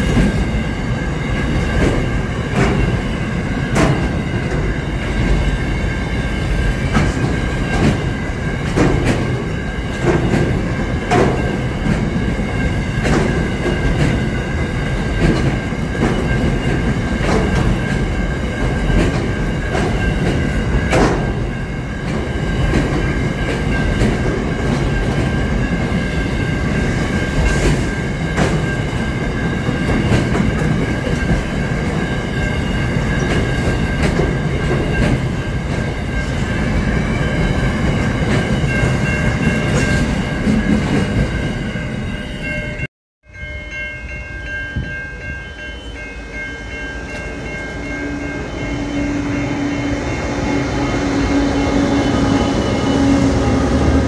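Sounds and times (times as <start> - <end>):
steel wheels rumbling on rail: 0.0 - 54.0
wheels clacking over rail joints: 6.8 - 25.8.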